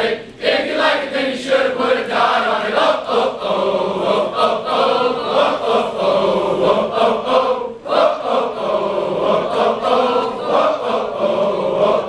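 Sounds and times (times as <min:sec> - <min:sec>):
group singing unaccompanied: 0:00.0 - 0:12.0.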